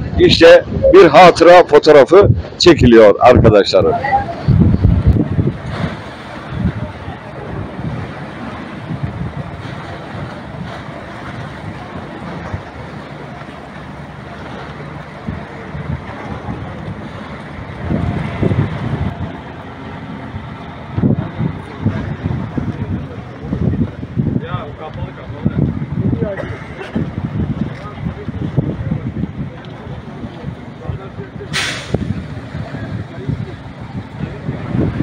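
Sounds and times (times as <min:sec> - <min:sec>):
people's voices: 0:00.0 - 0:04.9, 0:05.6 - 0:35.0
wind buffeting microphone: 0:00.0 - 0:35.0.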